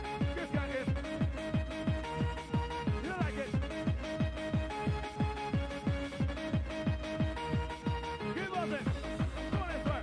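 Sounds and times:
fast four-to-the-floor kick drum: 0.0 - 8.1, 8.9 - 10.0.

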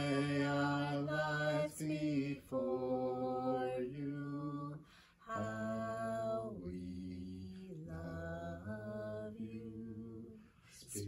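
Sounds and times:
singer breathing in: 4.8 - 5.2.

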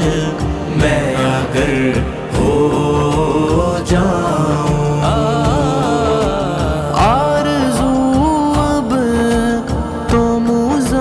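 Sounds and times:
male voices chanting: 0.0 - 10.4.

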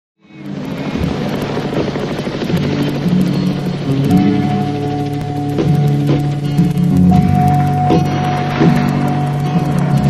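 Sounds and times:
helicopter rotor noise: 0.2 - 10.0
music with sustained low notes: 0.2 - 10.0.

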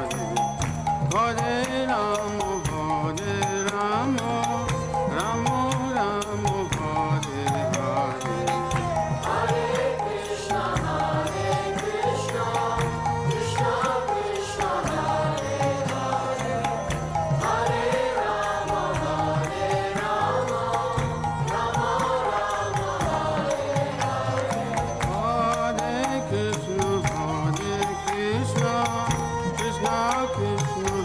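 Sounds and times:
percussive beat: 0.0 - 31.0
voices chanting: 5.2 - 28.8.

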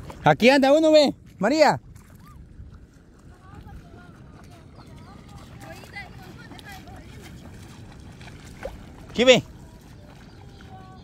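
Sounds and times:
distant people talking and calling: 3.2 - 11.0.

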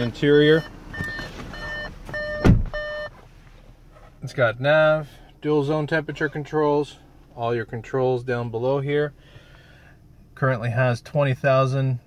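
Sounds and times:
car warning chime: 0.0 - 3.2
heavy thump: 2.1 - 2.8.

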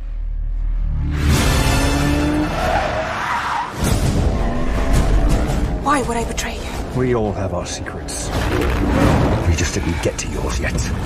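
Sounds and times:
music: 0.0 - 2.8, 3.7 - 9.6
engine revving: 0.8 - 2.9.

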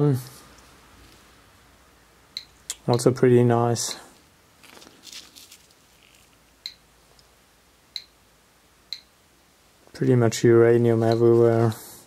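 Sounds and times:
stone rustling on concrete floor: 4.6 - 6.4.

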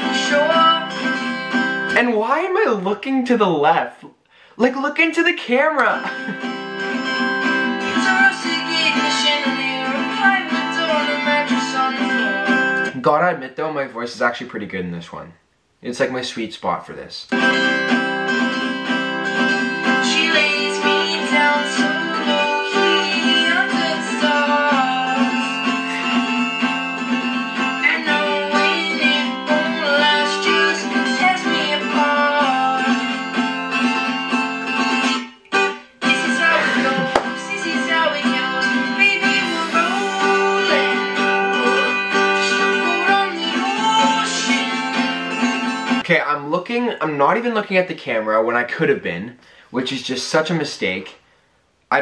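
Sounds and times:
young man singing: 0.0 - 1.2, 7.8 - 12.9, 20.0 - 26.5, 27.7 - 33.2, 36.1 - 45.2
acoustic guitar strumming: 0.0 - 2.3, 5.6 - 13.0, 17.3 - 46.1.

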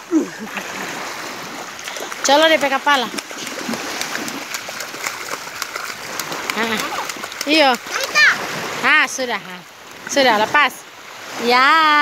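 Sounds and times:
small waves washing: 0.0 - 12.0
water splashing around legs: 0.1 - 9.3.

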